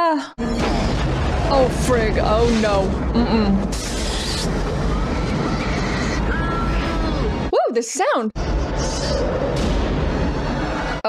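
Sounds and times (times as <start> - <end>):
heavy low rumble: 0.4 - 7.6, 8.4 - 11.0
rushing roar of escaping air: 2.3 - 7.5.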